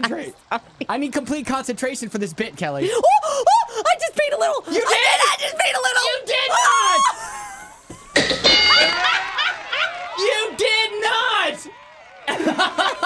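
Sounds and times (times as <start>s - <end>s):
excited talking: 0.0s - 7.8s, 8.7s - 13.0s
people laughing: 7.0s - 11.5s, 12.2s - 13.0s.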